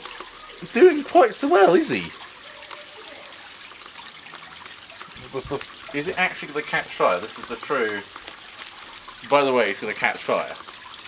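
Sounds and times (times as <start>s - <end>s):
chemical reaction hissing: 0.0s - 11.0s.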